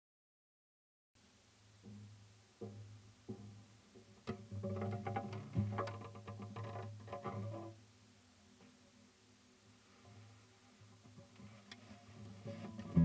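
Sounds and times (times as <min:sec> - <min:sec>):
classical guitar music: 0:12.4 - 0:13.0.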